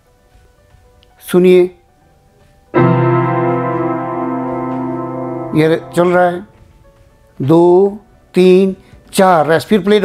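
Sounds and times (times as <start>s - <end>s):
low held instrumental note: 2.8s - 6.5s.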